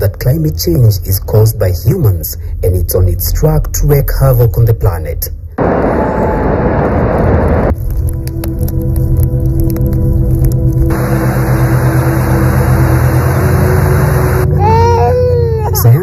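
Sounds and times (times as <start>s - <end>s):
heavy rain and wind hiss: 5.6s - 14.5s
music with sustained tones and pulsing beat: 7.7s - 16.0s
infant crying: 14.5s - 16.0s.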